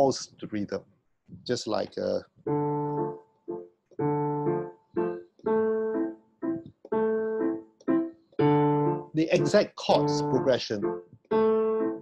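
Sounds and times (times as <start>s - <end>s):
digital piano playing waltz chords: 2.0s - 12.0s.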